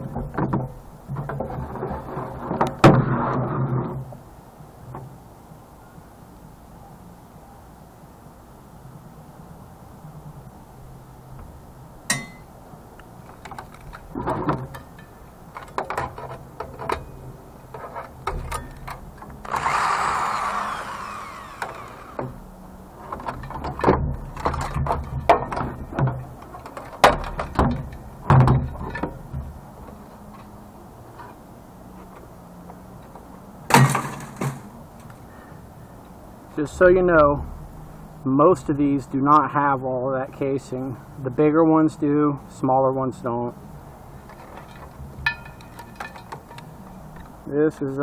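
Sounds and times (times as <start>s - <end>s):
electric drill running: 19.4s - 22.3s.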